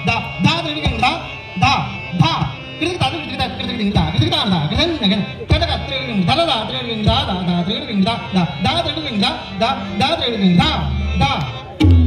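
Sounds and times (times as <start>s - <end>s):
harmonium melody: 0.0s - 12.0s.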